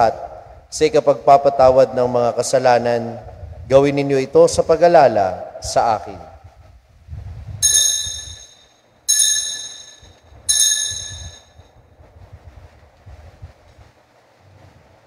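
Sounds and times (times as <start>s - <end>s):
altar bell ringing: 7.6s - 11.7s.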